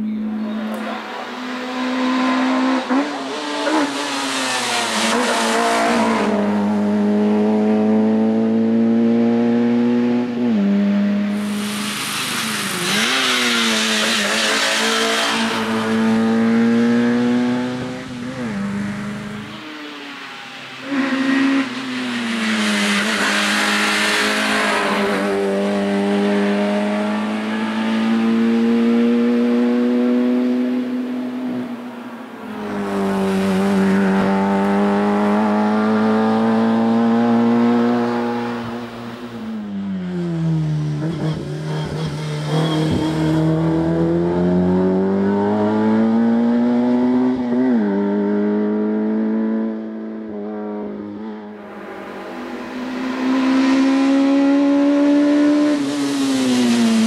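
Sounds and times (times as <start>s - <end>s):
race car engine revving hard: 0.0s - 19.6s, 20.8s - 39.5s, 40.7s - 57.0s.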